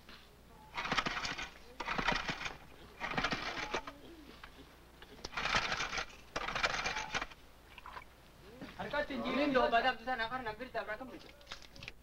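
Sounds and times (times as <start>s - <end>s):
small engine rattling pull-start: 0.8s - 4.0s, 5.2s - 7.4s.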